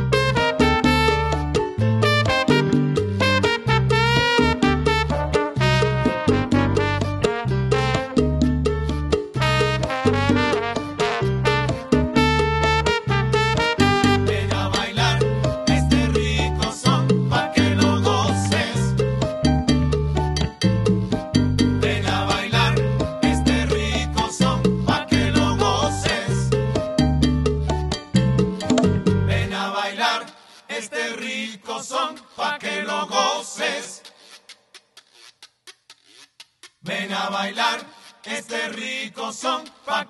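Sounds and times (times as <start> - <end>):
acoustic guitar: 0.0 - 14.8, 15.6 - 29.3
held bass notes: 0.0 - 29.5
bongo strokes: 34.0 - 36.9.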